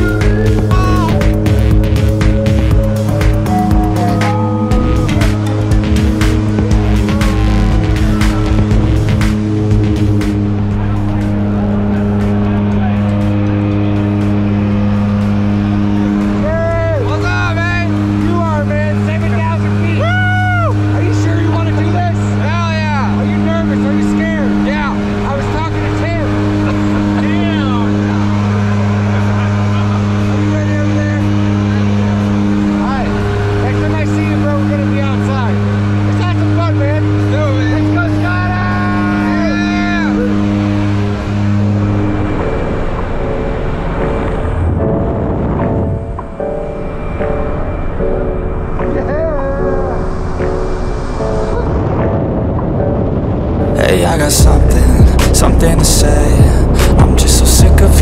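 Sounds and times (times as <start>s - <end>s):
people shouting and laughing: 0.0s - 1.8s, 2.9s - 9.4s, 10.2s - 33.4s, 37.6s - 40.6s
propeller engine drone: 0.0s - 57.9s.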